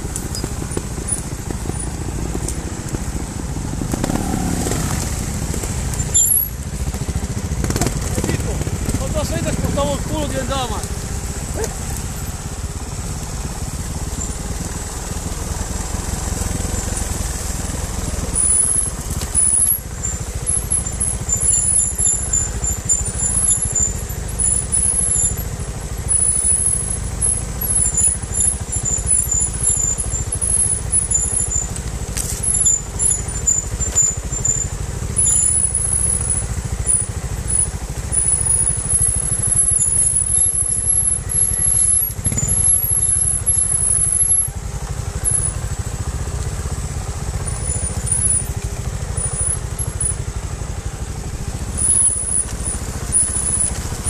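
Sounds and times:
motorcycle engine rumbling: 0.0s - 54.0s.

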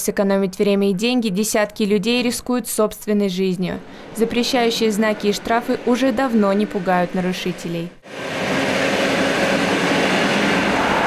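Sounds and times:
train passing at speed: 3.6s - 11.0s
train wheels on rails: 3.8s - 11.0s.

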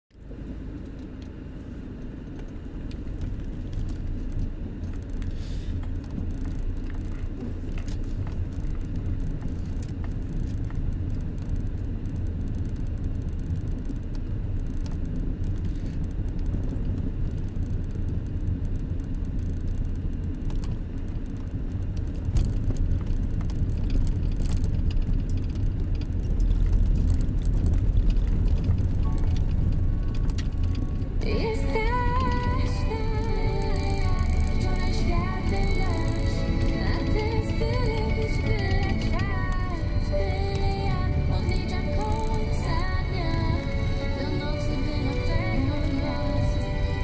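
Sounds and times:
car engine and tyres rumbling: 0.1s - 47.0s
light ticks: 2.0s - 46.7s.

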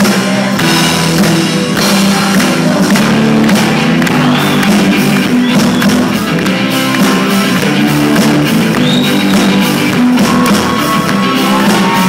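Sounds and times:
electric guitar: 0.0s - 12.0s
live rock band playing: 0.0s - 12.0s
steady drum beat: 0.0s - 12.0s.

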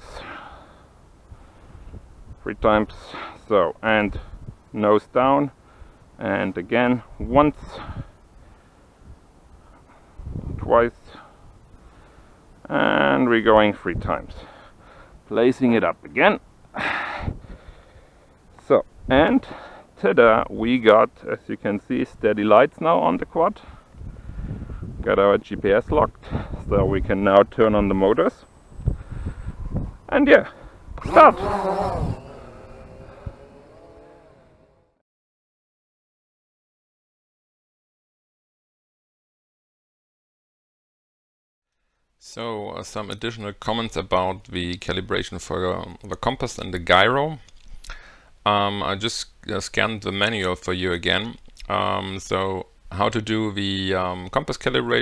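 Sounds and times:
faint outdoor hiss: 0.0s - 35.0s, 41.7s - 55.0s
quadcopter propellers whirring: 31.0s - 35.0s.

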